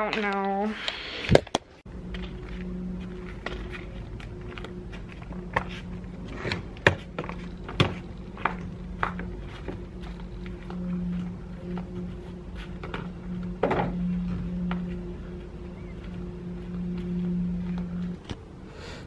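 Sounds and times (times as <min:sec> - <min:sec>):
steady low hum: 0:01.8 - 0:19.0
flip-flop footsteps on cobblestones: 0:02.0 - 0:11.9.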